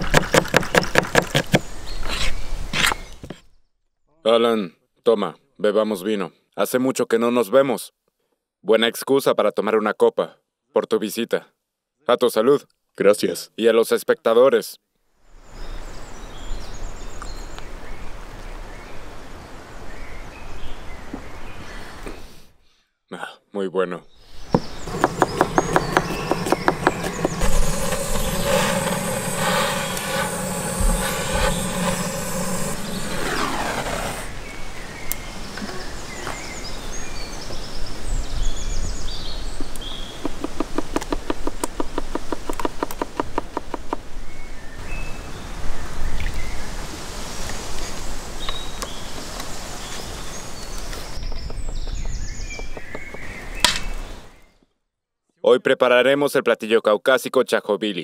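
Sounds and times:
birds chirping: 24.0s - 45.4s, 48.5s - 54.7s
knife chopping on cutting board: 24.9s - 27.4s.

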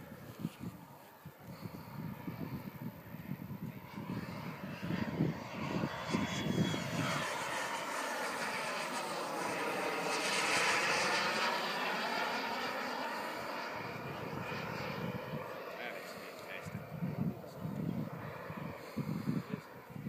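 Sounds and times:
model jet flying past: 0.0s - 20.0s.

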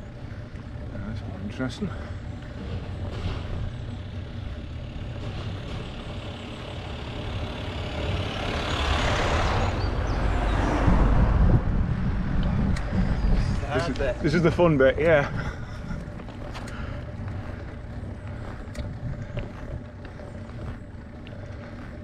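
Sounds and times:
van passing by: 0.0s - 22.0s
wind rumble on microphone: 8.2s - 22.0s.

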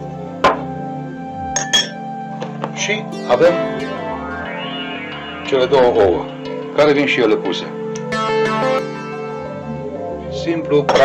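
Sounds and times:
acoustic guitar music: 3.1s - 10.4s.

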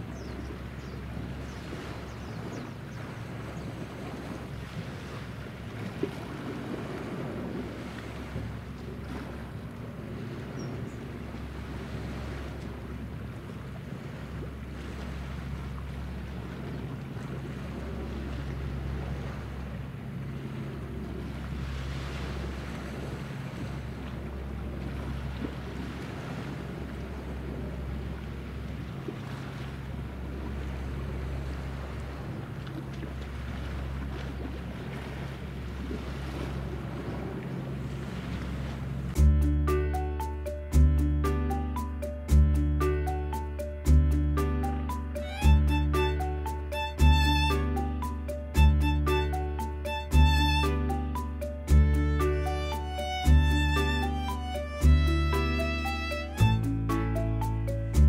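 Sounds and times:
wind rumbling on microphone: 0.0s - 39.4s
distant motorboat engines droning: 0.0s - 58.0s.

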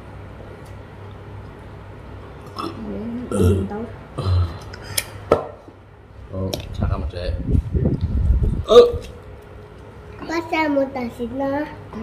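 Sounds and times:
person making wavering vocal sounds: 8.6s - 9.2s.

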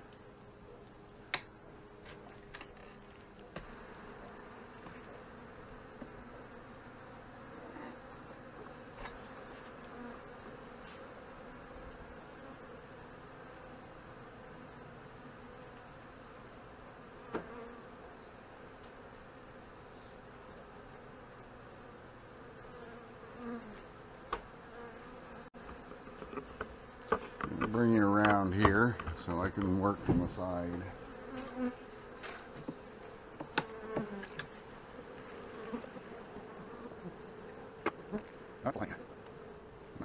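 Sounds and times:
honey bees buzzing: 0.0s - 40.0s.

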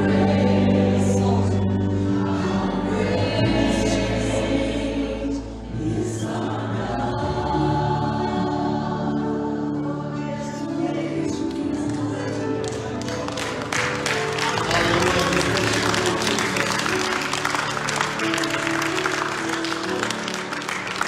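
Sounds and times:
vocalists singing together: 0.0s - 13.6s
band with guitars: 11.4s - 21.0s.

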